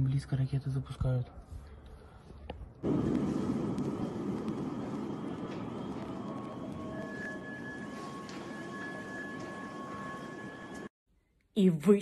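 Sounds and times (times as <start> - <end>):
city ambience rumble: 0.1 - 10.9
faint high-pitched tones: 4.7 - 10.9.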